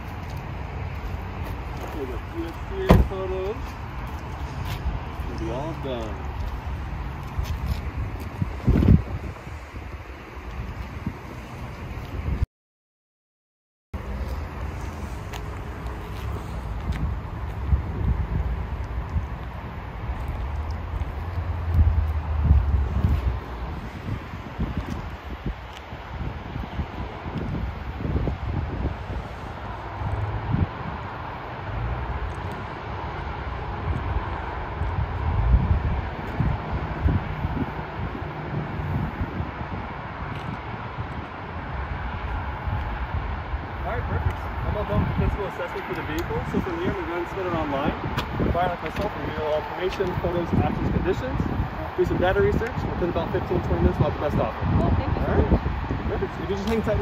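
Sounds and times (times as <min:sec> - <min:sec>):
parking lot background noise: 0:00.0 - 0:12.4, 0:14.0 - 0:57.0
wind buffeting microphone: 0:00.0 - 0:12.4, 0:14.0 - 0:57.0.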